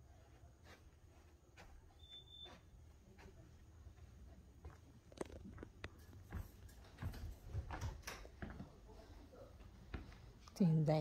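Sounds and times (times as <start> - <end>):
soft footsteps: 0.0 - 10.7
faint high beep: 2.0 - 2.6.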